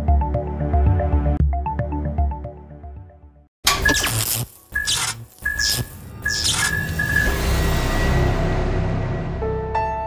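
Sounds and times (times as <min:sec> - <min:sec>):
music: 0:00.0 - 0:10.0
electric crackle and buzz: 0:03.7 - 0:07.3.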